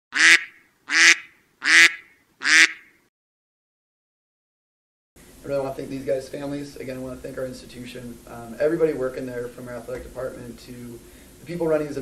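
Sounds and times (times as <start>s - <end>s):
duck quacks: 0.1s - 2.9s.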